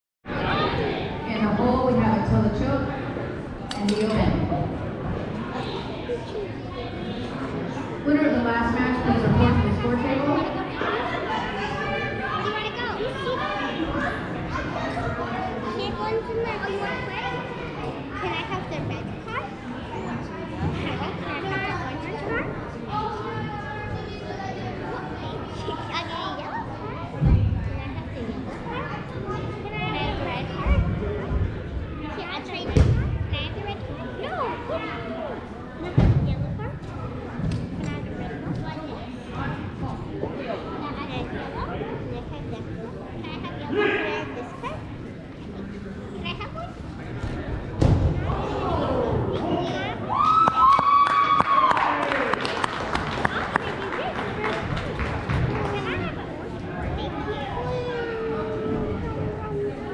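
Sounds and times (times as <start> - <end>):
indistinct background chatter: 0.2 - 59.9.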